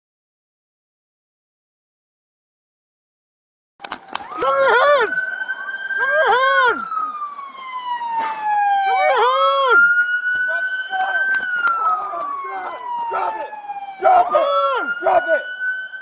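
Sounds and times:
police siren wailing: 0:03.8 - 0:16.0
person shouting: 0:13.1 - 0:15.5.

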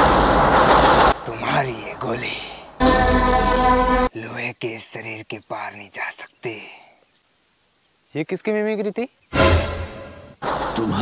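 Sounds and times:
man speaking: 0:01.2 - 0:03.0, 0:04.1 - 0:07.0, 0:10.8 - 0:11.0.

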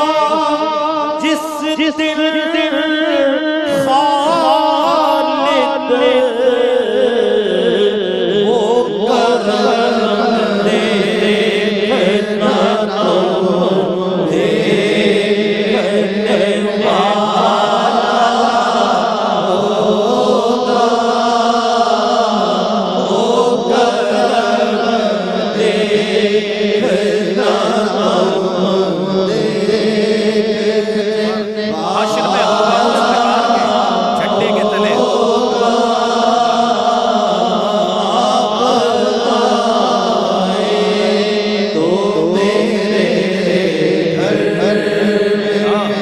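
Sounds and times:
man chanting devotional poem: 0:00.0 - 0:46.0.

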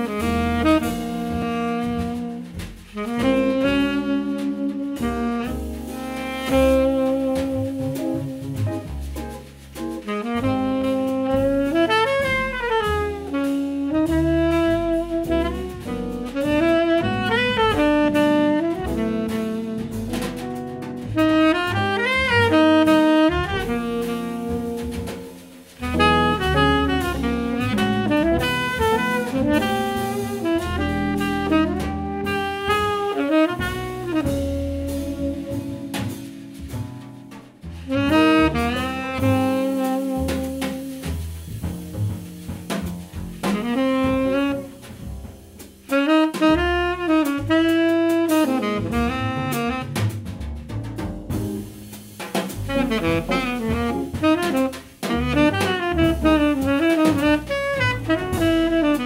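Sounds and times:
tenor saxophone melody: 0:00.0 - 0:09.0, 0:10.1 - 0:36.8, 0:37.8 - 0:41.2, 0:43.4 - 0:45.2, 0:45.8 - 0:50.2, 0:51.4 - 0:59.0
drum kit with cymbals: 0:00.0 - 0:59.0
walking double bass: 0:00.0 - 0:59.0.

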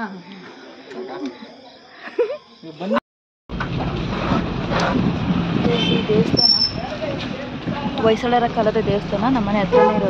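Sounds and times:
voices: 0:00.0 - 0:03.0, 0:05.6 - 0:10.0
engine and road rumble: 0:03.5 - 0:10.0.

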